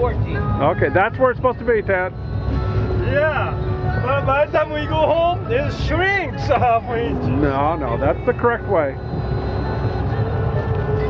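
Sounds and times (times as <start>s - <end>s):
boat motor rumbling: 0.0s - 11.0s
faint held tones: 0.0s - 11.0s.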